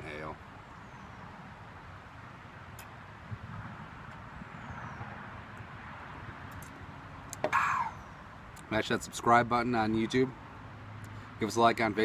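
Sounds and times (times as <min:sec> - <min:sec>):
quiet outdoor background noise: 0:00.0 - 0:12.0.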